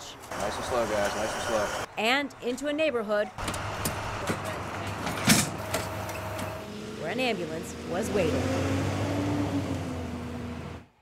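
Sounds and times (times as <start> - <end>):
road noise: 0.0 - 11.0
vehicle engine rumble: 3.4 - 11.0.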